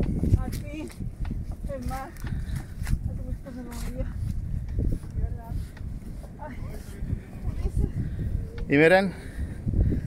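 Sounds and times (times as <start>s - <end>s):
footsteps in loose sand: 0.0s - 7.6s.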